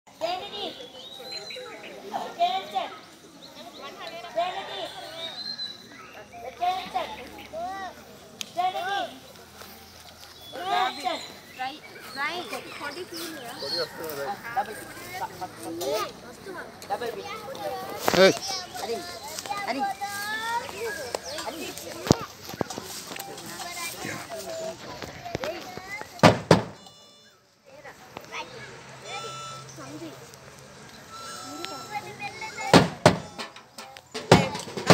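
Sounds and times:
young children calling and chattering: 0:00.1 - 0:34.9
sharp knocks: 0:26.2 - 0:26.8, 0:32.7 - 0:34.9.

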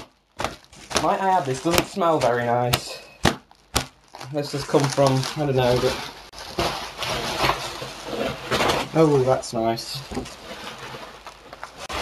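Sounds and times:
bubble wrap rustling: 0:00.0 - 0:12.0.

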